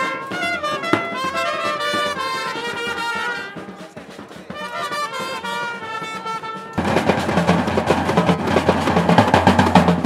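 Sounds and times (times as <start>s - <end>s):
drums playing fast rhythm: 0.0s - 10.0s.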